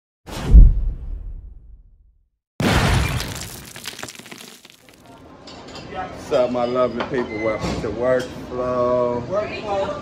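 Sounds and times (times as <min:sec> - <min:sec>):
deep boom: 0:00.4 - 0:03.4
shattering crash: 0:02.6 - 0:05.2.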